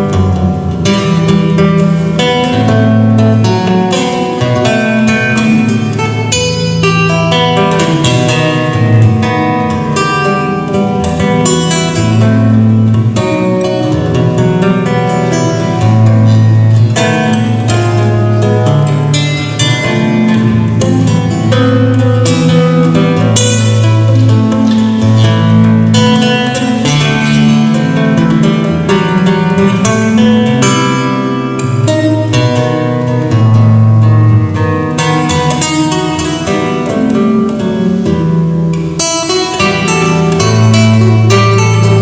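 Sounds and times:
acoustic guitar playing: 0.0s - 42.0s.

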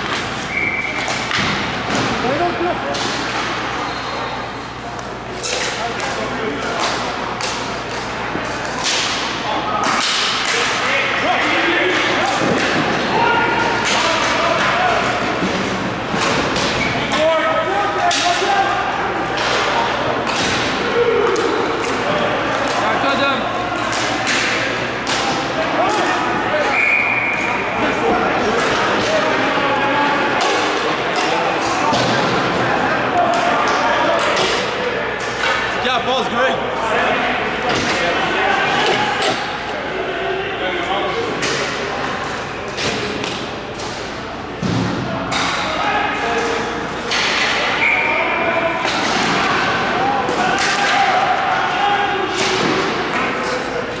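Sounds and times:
players shouting: 0.0s - 43.2s, 44.0s - 54.0s
high whistle: 0.5s - 1.0s, 26.7s - 27.5s, 47.8s - 48.3s.

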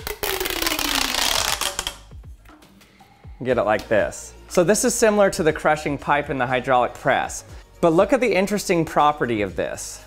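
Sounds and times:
pop tube toy crackling clicks: 0.0s - 2.1s.

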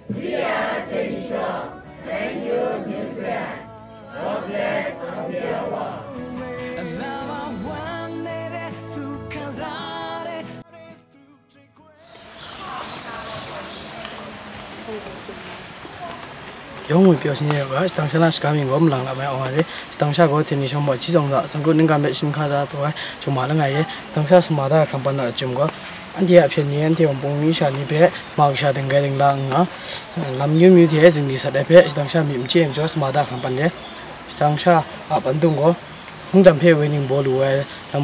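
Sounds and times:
insects chirring: 0.3s - 3.6s, 12.0s - 38.0s.

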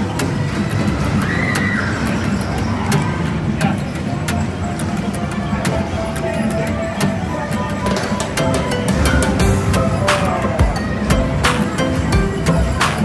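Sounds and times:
electronic game machine music: 0.0s - 13.0s.

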